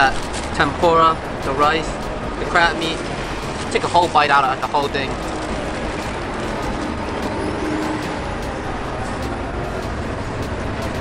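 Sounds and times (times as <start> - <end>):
street traffic: 0.0 - 11.0.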